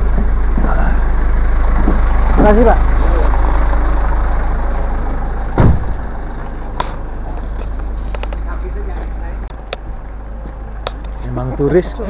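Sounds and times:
diesel bus engine idling: 0:00.0 - 0:12.0
loud thump: 0:05.3 - 0:07.0.

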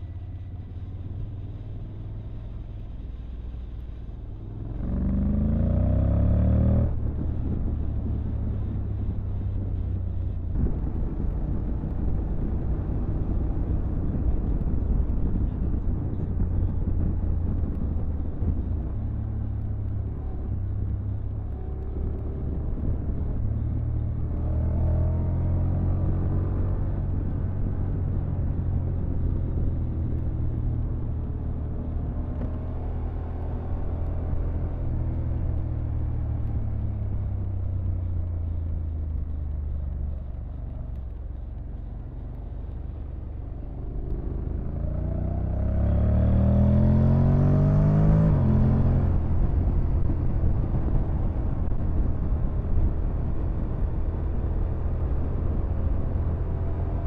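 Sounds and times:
motorcycle engine rumble: 0:00.0 - 0:57.0.

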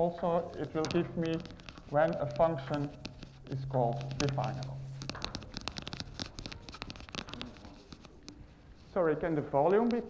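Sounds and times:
chalk writing on a blackboard: 0:01.0 - 0:08.9.

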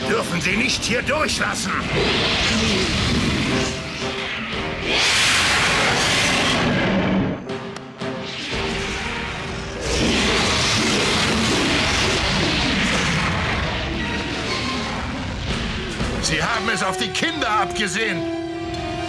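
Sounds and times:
film score music: 0:00.0 - 0:19.0.

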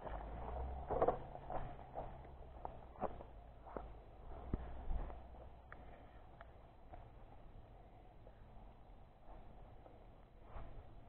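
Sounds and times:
faint low rumble: 0:00.0 - 0:11.0.

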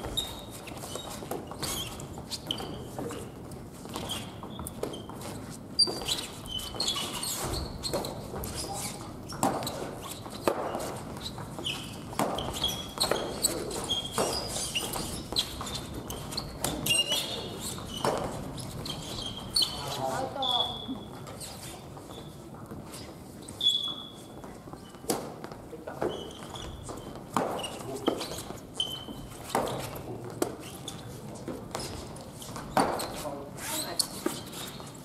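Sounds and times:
shoes squeaking on wooden floor: 0:00.0 - 0:35.0.

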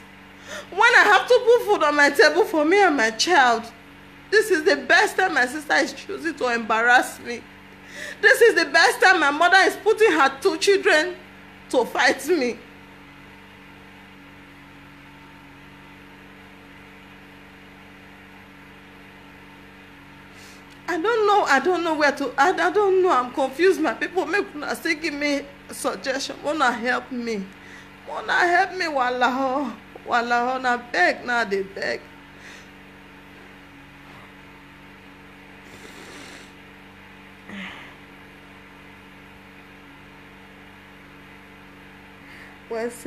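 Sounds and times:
steady background hum: 0:00.0 - 0:43.0
woman sniffling: 0:00.4 - 0:00.7, 0:35.6 - 0:36.6, 0:37.4 - 0:38.1.

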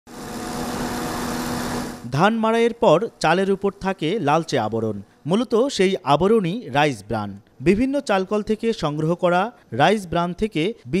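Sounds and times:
machinery humming: 0:00.1 - 0:02.3.

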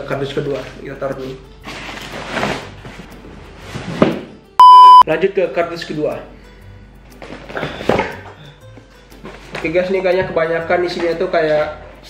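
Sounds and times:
soft background music: 0:00.0 - 0:12.0.

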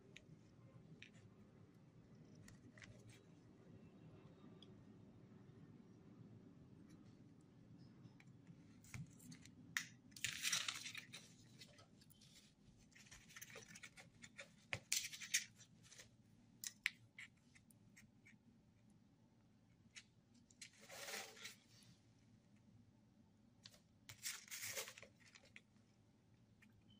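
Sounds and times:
faint steady hum: 0:00.0 - 0:26.9
scraping and rustling on cardboard: 0:20.6 - 0:21.9, 0:24.1 - 0:25.6.

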